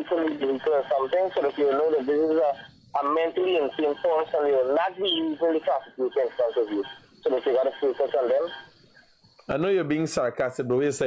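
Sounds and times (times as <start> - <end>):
person talking over phone line: 0.0 - 8.6.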